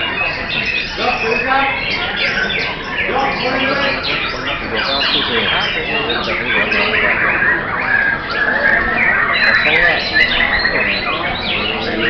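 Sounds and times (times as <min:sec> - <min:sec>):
people talking in background: 0:00.0 - 0:12.0
songbirds whistling and trilling: 0:00.0 - 0:12.0.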